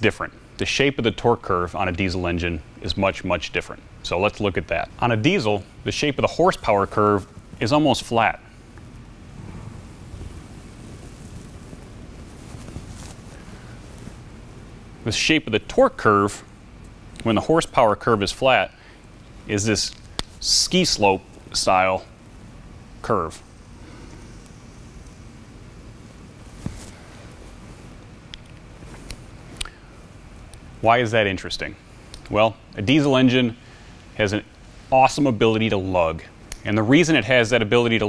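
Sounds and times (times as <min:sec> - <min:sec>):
low room rumble: 0:00.0 - 0:38.0.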